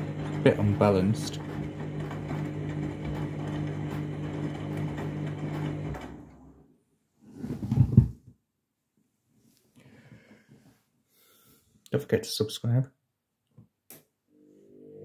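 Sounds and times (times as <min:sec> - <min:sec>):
washing machine drum humming: 0:00.0 - 0:06.3.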